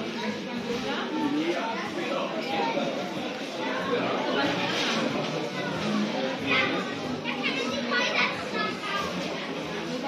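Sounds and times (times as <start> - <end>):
background chatter: 0.0 - 10.0
children's voices: 1.2 - 10.0.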